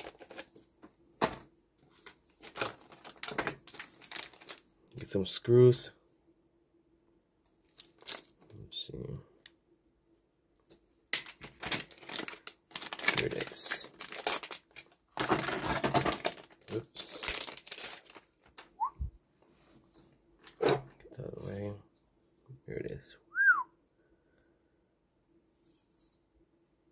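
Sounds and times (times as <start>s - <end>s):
plastic bags crinkling: 0.0s - 0.5s, 2.0s - 4.6s, 7.6s - 8.4s, 11.1s - 18.8s.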